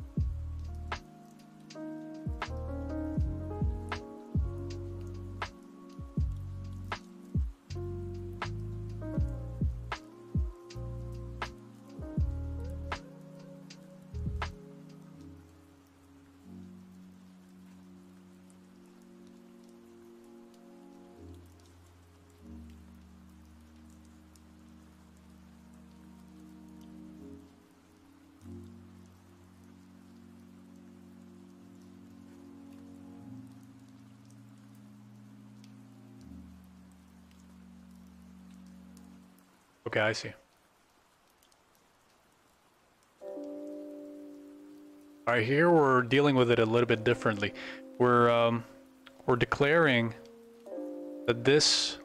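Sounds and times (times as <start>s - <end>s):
soft sustained low chords: 0.0s - 1.7s, 2.3s - 39.4s
faint rain-like patter: 0.0s - 52.0s.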